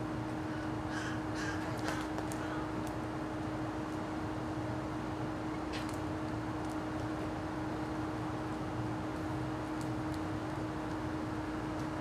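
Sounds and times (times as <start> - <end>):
steady low hum: 0.0 - 12.0
short bird calls: 0.4 - 2.7.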